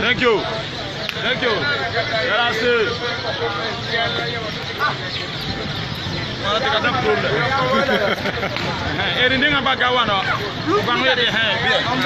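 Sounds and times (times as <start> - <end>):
people talking: 0.0 - 12.0
street traffic: 0.0 - 12.0.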